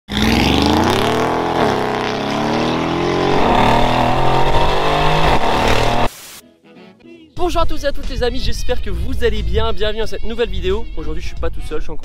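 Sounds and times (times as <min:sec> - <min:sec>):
engine accelerating hard: 0:00.1 - 0:06.1.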